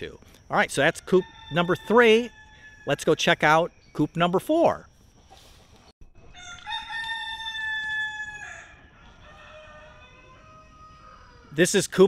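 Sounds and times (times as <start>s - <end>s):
rooster crowing: 0.9s - 2.9s, 6.3s - 11.6s.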